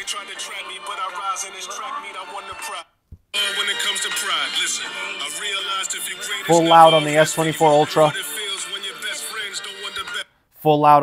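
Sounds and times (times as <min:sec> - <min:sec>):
rap song over phone speakers: 0:00.0 - 0:10.4.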